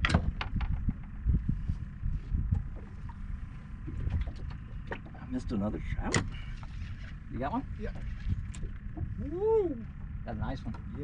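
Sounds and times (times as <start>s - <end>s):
sharp clicks in boat: 0.0s - 1.2s, 3.8s - 5.2s, 5.9s - 7.2s, 8.0s - 9.1s, 10.6s - 11.0s.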